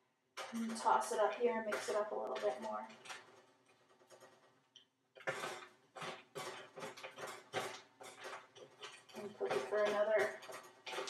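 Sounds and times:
spatula scraping snack mix on metal: 0.4 - 4.4, 5.2 - 11.0.

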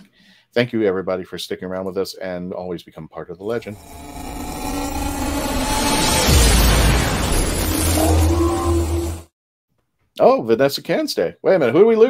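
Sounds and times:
rumbling whooshing swell: 3.7 - 9.2.

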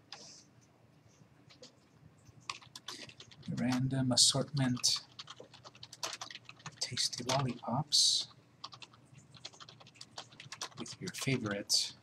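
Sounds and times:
computer keyboard typing: 2.4 - 11.9.

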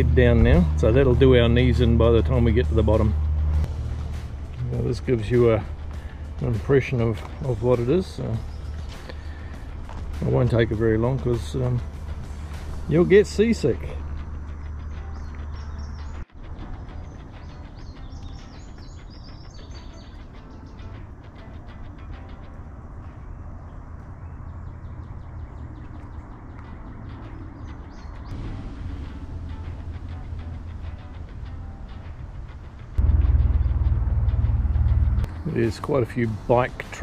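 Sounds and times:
loud low rumble: 0.0 - 16.1, 28.3 - 36.6
birds chirping: 0.0 - 37.0.

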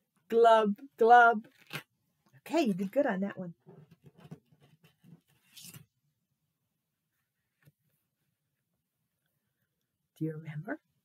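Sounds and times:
paper rustling: 3.9 - 5.9.

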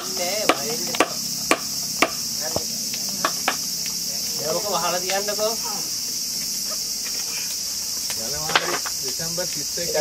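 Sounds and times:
sharp knocks: 0.0 - 3.7
insects chirring: 0.0 - 10.0.

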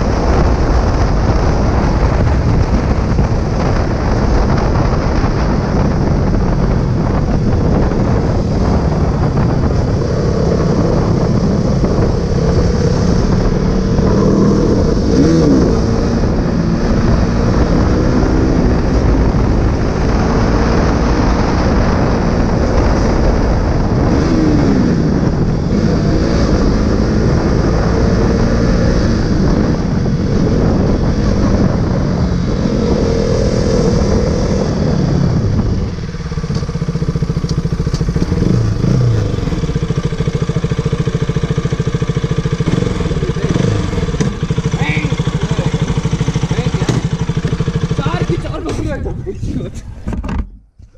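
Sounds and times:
motorcycle engine revving: 0.0 - 49.2
rushing wind: 0.0 - 50.9.

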